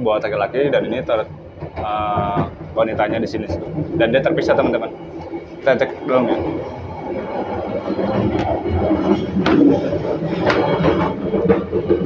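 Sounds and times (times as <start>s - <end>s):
train carriage rumble: 0.0s - 12.0s
sharp knocks: 8.2s - 12.0s.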